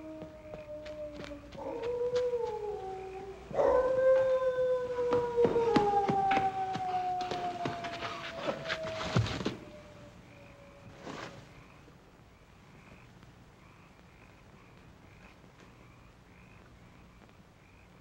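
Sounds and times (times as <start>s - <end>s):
night creatures chirping: 0.0s - 10.9s
hound howling: 0.0s - 11.0s.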